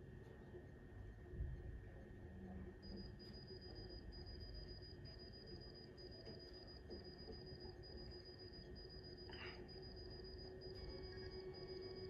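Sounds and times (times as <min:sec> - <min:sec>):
faint steady hum: 0:00.0 - 0:12.0
hospital monitor alarm beeping: 0:02.8 - 0:12.0.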